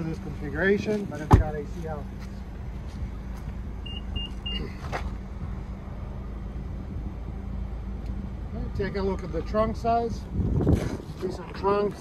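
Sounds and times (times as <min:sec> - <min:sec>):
short high beeps: 0:03.8 - 0:04.7.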